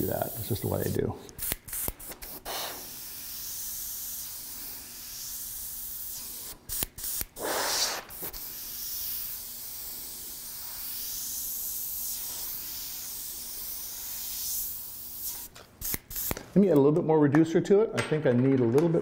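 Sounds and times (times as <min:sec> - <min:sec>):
airbrush spraying hiss: 0:00.0 - 0:16.4.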